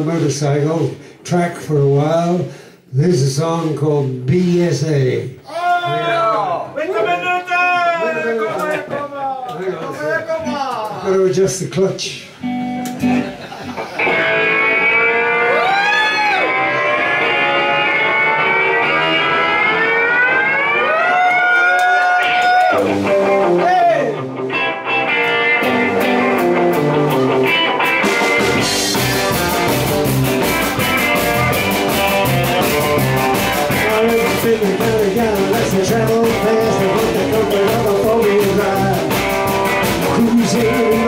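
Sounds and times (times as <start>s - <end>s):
rock band with drums: 0.0s - 6.2s, 8.6s - 41.0s
electric guitar sliding notes: 12.4s - 21.1s, 22.6s - 41.0s.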